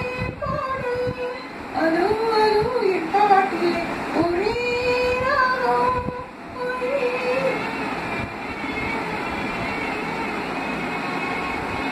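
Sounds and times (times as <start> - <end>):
steady background noise: 0.0 - 11.9
woman singing a long note: 0.0 - 11.9.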